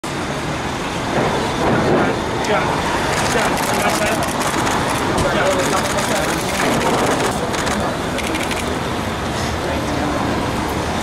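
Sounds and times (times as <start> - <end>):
road traffic rumble: 0.1 - 11.0.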